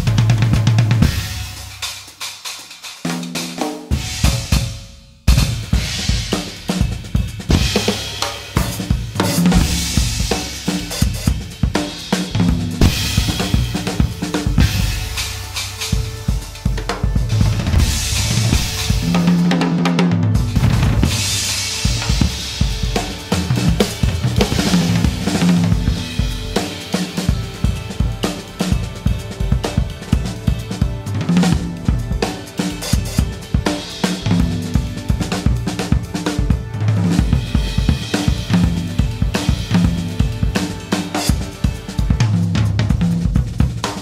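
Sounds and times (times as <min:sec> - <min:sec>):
jazz drum kit playing: 0:00.0 - 0:44.0.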